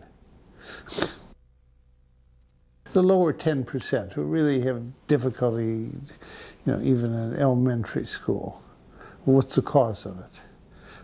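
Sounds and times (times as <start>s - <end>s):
sharp exhale: 0.6s - 1.4s, 6.2s - 6.6s, 8.9s - 9.2s, 10.7s - 11.0s.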